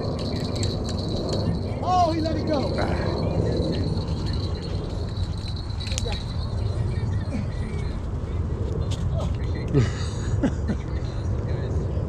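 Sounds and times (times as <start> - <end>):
thin high whine: 0.0 - 8.8
low outdoor rumble: 0.0 - 12.0.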